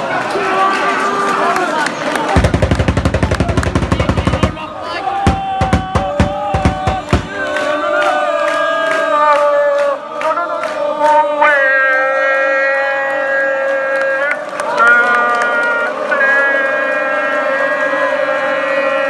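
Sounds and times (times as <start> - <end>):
crowd clapping: 0.0 - 19.0
crowd singing a chant: 2.4 - 19.0.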